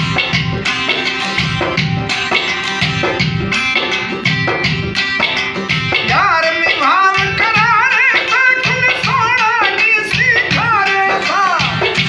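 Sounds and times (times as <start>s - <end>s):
long-necked lute strummed: 0.0s - 12.0s
ornamented melody line: 0.0s - 12.0s.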